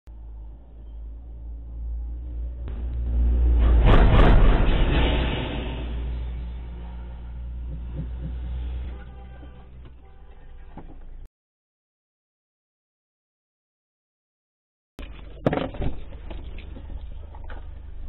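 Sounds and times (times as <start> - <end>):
low vehicle rumble: 0.1 - 11.3, 15.0 - 18.0.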